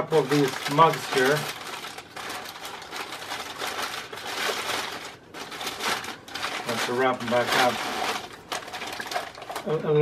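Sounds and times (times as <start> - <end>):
newspaper rustling and crinkling: 0.0 - 10.0.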